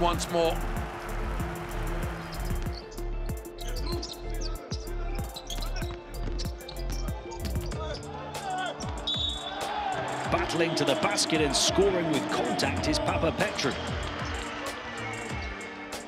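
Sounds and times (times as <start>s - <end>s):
backing music: 0.0s - 16.0s
shoes squeaking: 5.3s - 8.1s.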